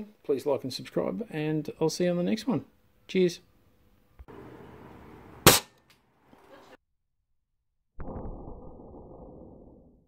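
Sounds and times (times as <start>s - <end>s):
sharp bang: 5.4s - 5.8s.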